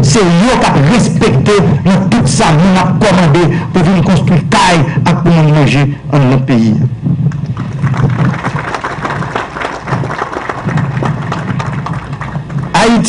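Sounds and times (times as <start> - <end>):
audience applauding: 7.5 - 13.0.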